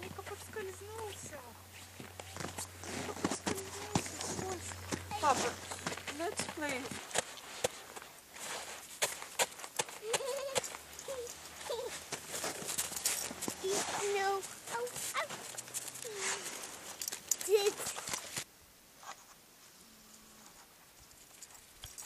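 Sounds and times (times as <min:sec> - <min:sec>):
footsteps crunching in snow: 0:00.0 - 0:18.5
child's wordless vocal sounds: 0:16.0 - 0:16.6.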